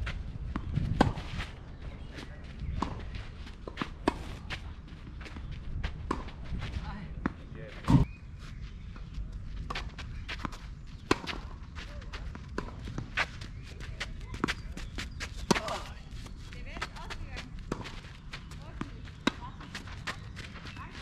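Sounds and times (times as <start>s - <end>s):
footsteps on clay: 0.0s - 21.0s
tennis ball bouncing: 6.0s - 6.4s.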